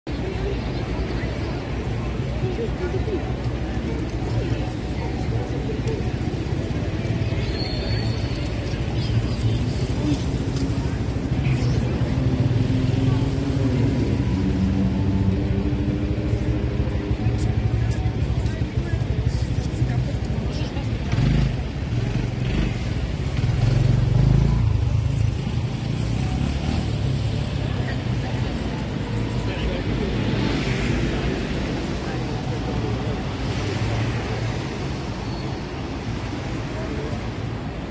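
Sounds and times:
road traffic hum: 0:00.0 - 0:37.9.

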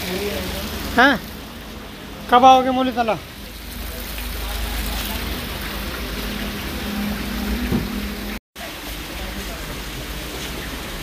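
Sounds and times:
rushing noise with low rumble: 0:03.2 - 0:11.0.

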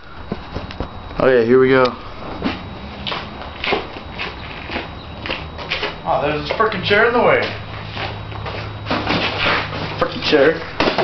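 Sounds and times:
low steady hum: 0:00.0 - 0:11.0
footsteps on brick paving: 0:02.5 - 0:06.8.

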